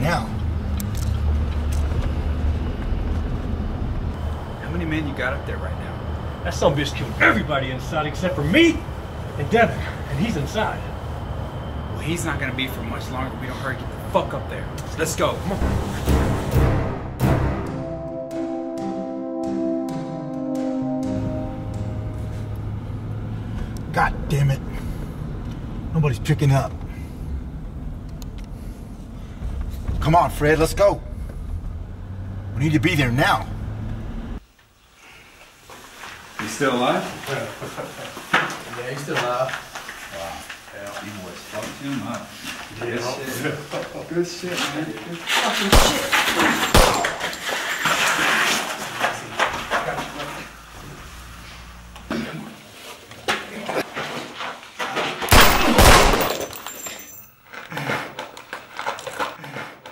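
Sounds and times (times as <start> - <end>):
gunshots with echo: 55.3 - 56.4.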